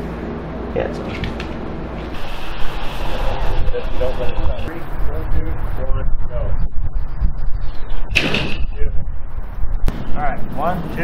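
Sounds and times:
wind buffeting microphone: 1.6 - 11.0.

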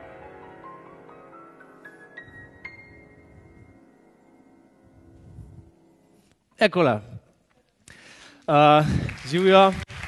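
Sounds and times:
grand piano notes ringing: 0.0 - 6.3.

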